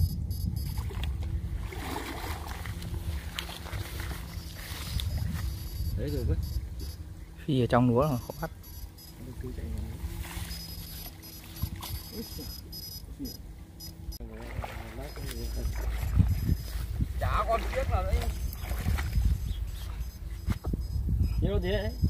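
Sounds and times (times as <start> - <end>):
steady low rumble: 0.0 - 22.0
water sloshing around legs: 0.6 - 5.9, 14.2 - 20.2.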